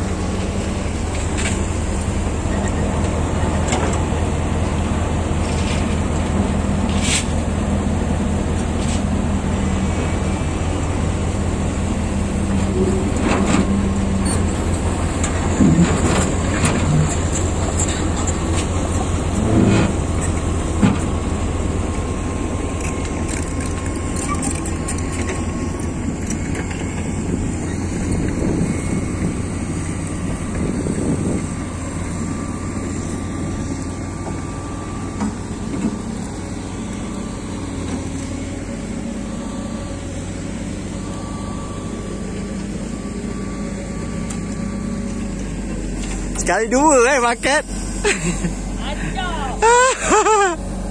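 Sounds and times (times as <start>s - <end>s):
excavator diesel engine running: 0.0s - 50.9s.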